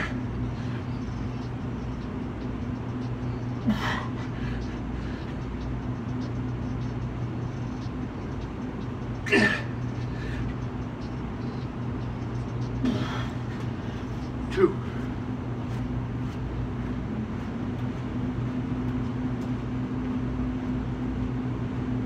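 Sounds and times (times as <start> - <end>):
low machinery hum: 0.0 - 22.0
man making short vocal sounds: 14.4 - 15.0.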